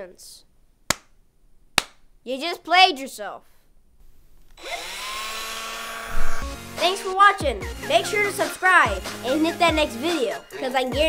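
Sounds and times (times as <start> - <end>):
cordless drill motor whining: 4.6 - 6.6.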